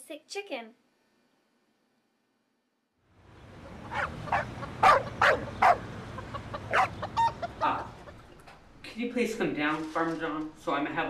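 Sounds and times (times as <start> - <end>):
dog barking: 3.9 - 5.9, 6.7 - 7.0.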